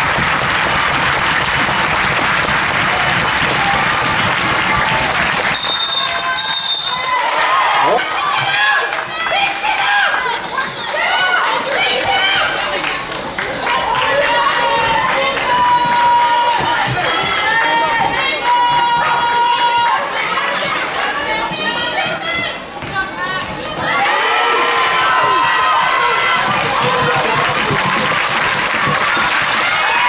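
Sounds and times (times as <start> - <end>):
crowd voices: 0.9 - 30.0
shoe squeaks: 21.5 - 23.4.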